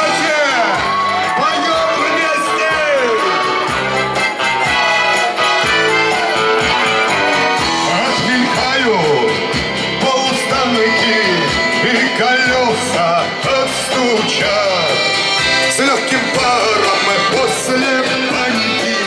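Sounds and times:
acoustic guitar: 2.0 - 19.0
man singing: 6.6 - 19.0.

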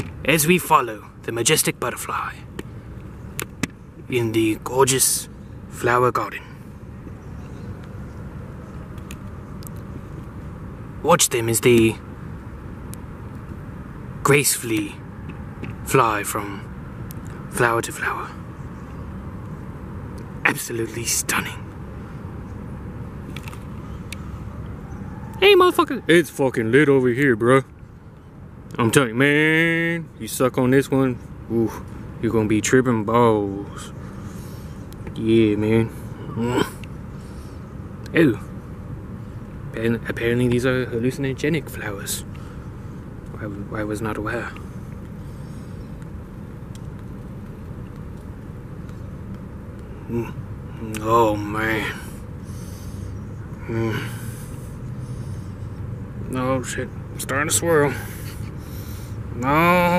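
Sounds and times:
low outdoor rumble: 0.0 - 59.9.

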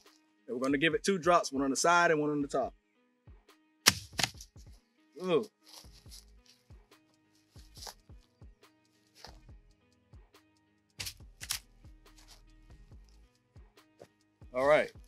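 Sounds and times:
faint background music: 0.0 - 15.0
handgun clicks and knocks: 3.9 - 4.5.

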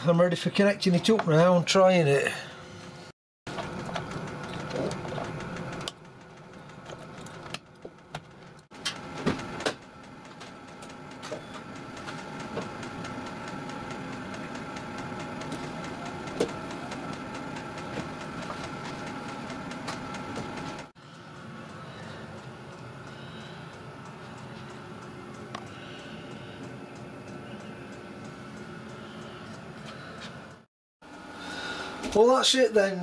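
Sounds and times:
sharp engine clicks and knocks: 3.5 - 29.6.

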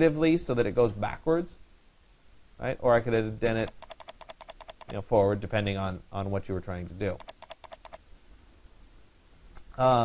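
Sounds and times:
computer keyboard typing: 3.6 - 5.0, 7.1 - 8.0.

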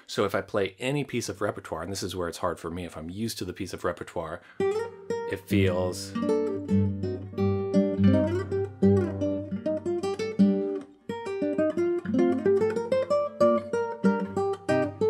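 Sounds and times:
classical guitar fingerpicking: 4.6 - 15.0.

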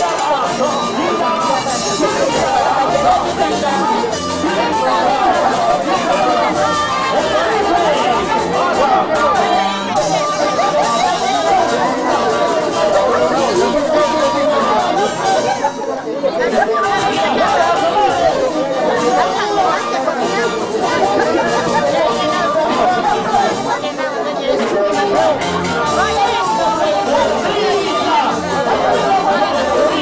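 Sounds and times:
group of people chattering: 0.0 - 30.0.

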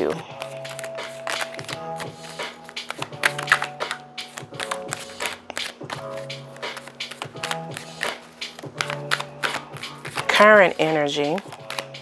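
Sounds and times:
cards being shuffled: 0.0 - 12.0
soft background music: 0.0 - 12.0.

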